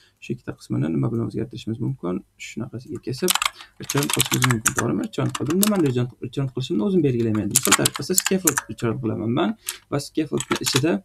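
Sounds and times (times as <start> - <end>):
person talking: 0.0 - 11.0
keyboard typing: 2.9 - 8.8, 9.6 - 10.9.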